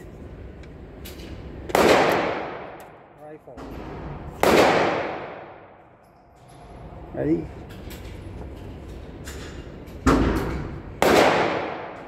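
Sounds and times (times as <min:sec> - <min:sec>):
rifle shot echo indoors: 0:01.7 - 0:03.0, 0:04.4 - 0:05.8, 0:10.0 - 0:12.0.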